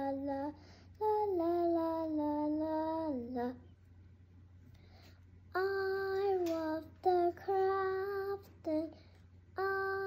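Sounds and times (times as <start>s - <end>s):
child singing wordless tune: 0.0s - 3.7s, 5.5s - 10.0s.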